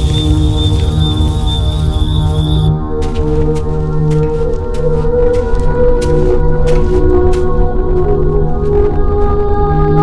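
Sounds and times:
sustained low tones: 0:00.0 - 0:02.7.

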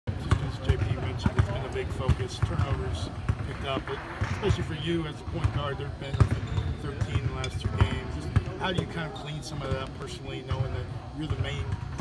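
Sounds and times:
basketballs bouncing on court: 0:00.1 - 0:12.0.

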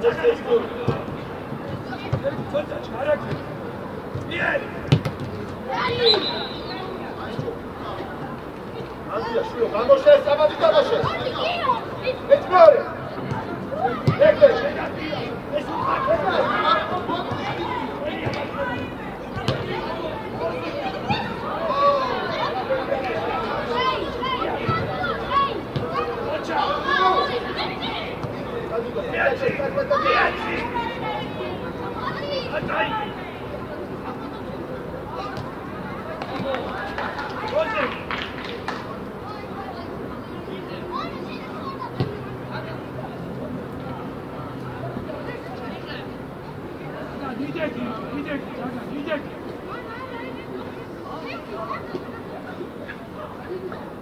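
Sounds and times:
voices calling and shouting: 0:00.0 - 0:54.0
children and adults shouting: 0:05.7 - 0:07.1, 0:09.1 - 0:33.5.

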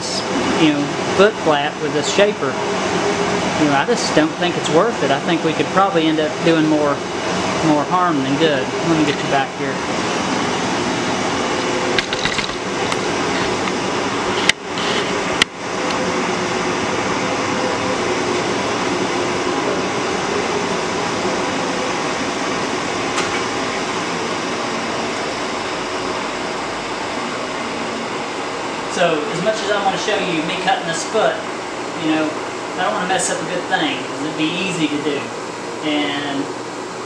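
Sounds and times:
man talking: 0:00.0 - 0:02.6, 0:03.6 - 0:07.0, 0:07.6 - 0:09.8, 0:28.9 - 0:36.5
ventilation hum: 0:00.0 - 0:37.0.

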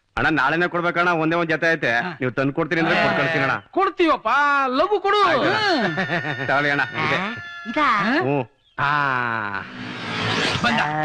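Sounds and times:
person speaking: 0:02.8 - 0:03.6
men laughing: 0:05.4 - 0:07.4.

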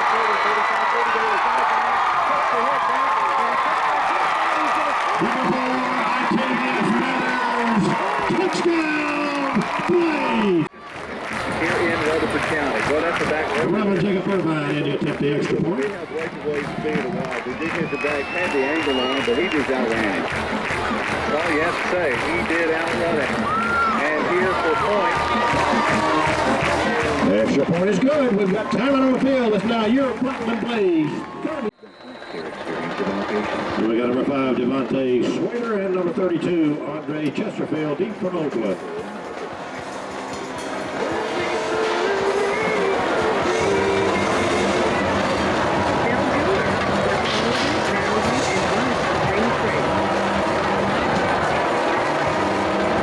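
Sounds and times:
voices: 0:00.0 - 0:53.0
music: 0:04.7 - 0:34.4, 0:38.1 - 0:53.0.

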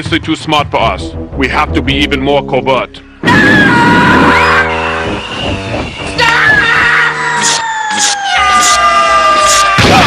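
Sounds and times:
orchestral chords: 0:00.8 - 0:03.3.

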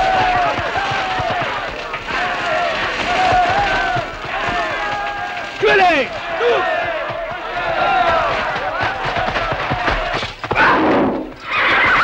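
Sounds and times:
horse whinnying: 0:10.5 - 0:12.0.

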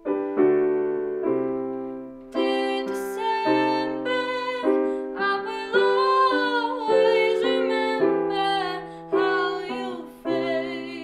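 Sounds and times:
piano chords: 0:00.0 - 0:11.0
girl singing: 0:02.3 - 0:11.0.

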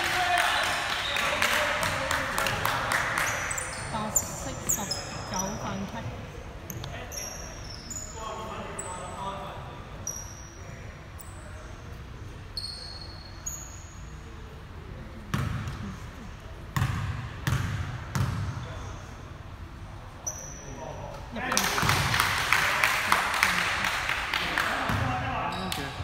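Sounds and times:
voices: 0:00.0 - 0:09.8
sneakers squeaking: 0:02.9 - 0:09.3, 0:09.9 - 0:11.8, 0:12.5 - 0:14.2, 0:15.3 - 0:16.2, 0:16.8 - 0:19.2, 0:20.2 - 0:20.9.

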